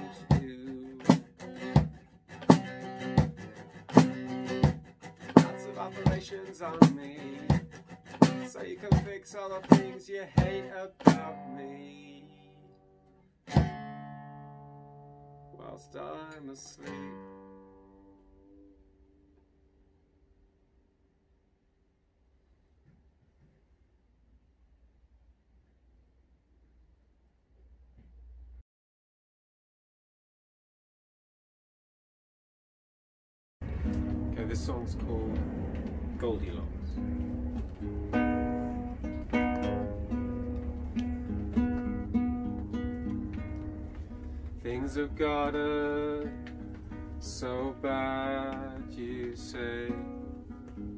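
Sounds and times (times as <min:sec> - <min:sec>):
acoustic guitar chord ringing: 0:00.0 - 0:20.0, 0:33.6 - 0:50.9.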